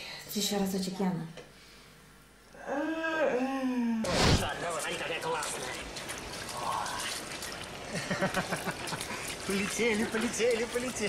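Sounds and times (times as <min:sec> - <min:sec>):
water splashing and trickling: 0:04.4 - 0:11.0.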